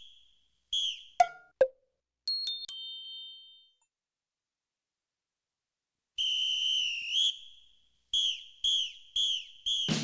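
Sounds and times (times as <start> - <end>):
whistle blasts: 0.0 - 1.5, 6.2 - 10.0.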